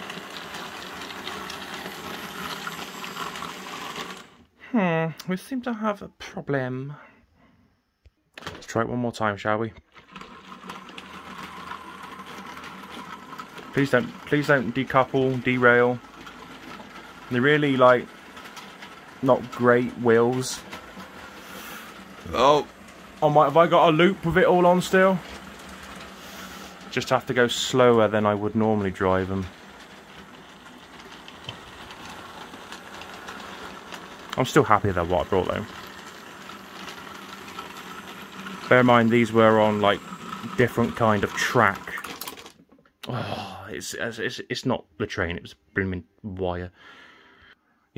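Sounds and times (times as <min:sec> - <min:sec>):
model train motor humming: 0:00.0 - 0:04.4, 0:10.0 - 0:42.5
wheels ticking on rails: 0:10.2 - 0:42.3.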